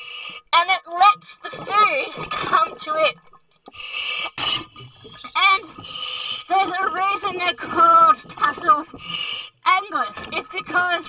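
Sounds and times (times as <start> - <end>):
scuba regulator breath hiss: 0.0 - 0.4, 3.7 - 6.6, 8.9 - 9.6.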